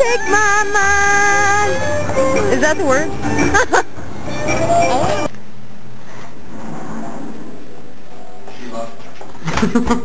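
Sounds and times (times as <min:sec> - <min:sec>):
woman laughing: 0:03.4 - 0:04.0.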